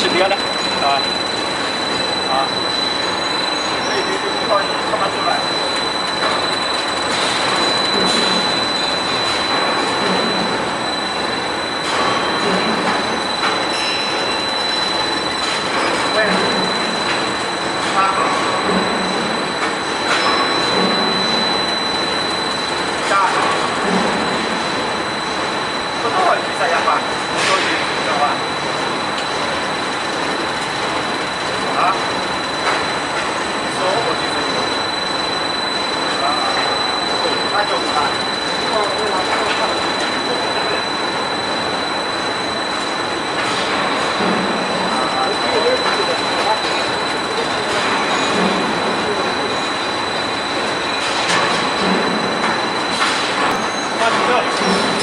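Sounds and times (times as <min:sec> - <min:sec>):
machine running with whine: 0:00.0 - 0:55.0.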